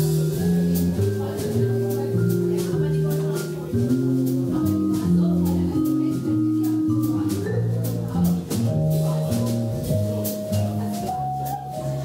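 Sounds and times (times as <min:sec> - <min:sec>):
plucked double bass: 0:00.0 - 0:12.0
vibraphone notes: 0:00.0 - 0:12.0.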